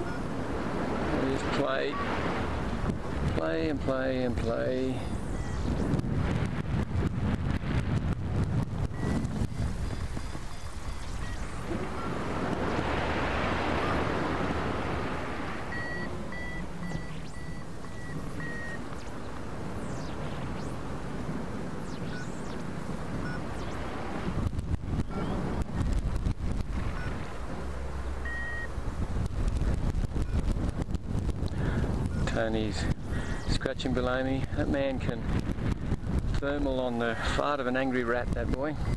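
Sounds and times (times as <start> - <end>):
wind rushing over microphone: 0.0 - 38.9
faint short high beeps: 9.0 - 12.2, 15.7 - 18.8, 28.2 - 28.7.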